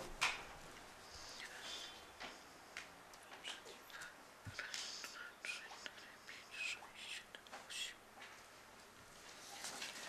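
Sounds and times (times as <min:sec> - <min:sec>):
faint whispering: 0:01.0 - 0:02.6, 0:03.2 - 0:08.1, 0:09.3 - 0:10.0.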